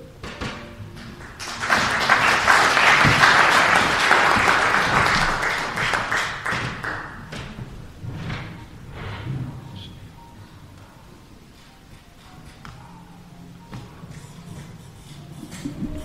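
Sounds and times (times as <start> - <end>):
audience applauding: 0.9 - 7.4.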